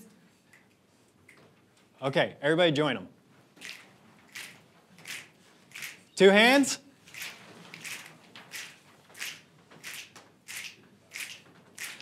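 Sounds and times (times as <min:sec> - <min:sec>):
people snapping fingers: 0:03.6 - 0:06.0, 0:07.8 - 0:12.0.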